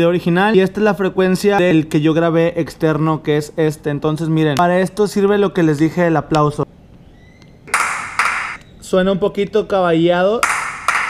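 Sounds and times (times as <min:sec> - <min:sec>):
doubled hand clap with echo: 0:07.7 - 0:08.6, 0:10.4 - 0:11.0.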